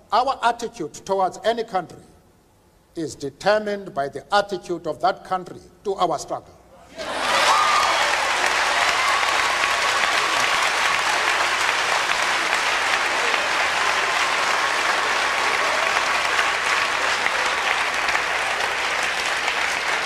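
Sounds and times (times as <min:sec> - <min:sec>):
audience applauding: 0:07.0 - 0:20.0.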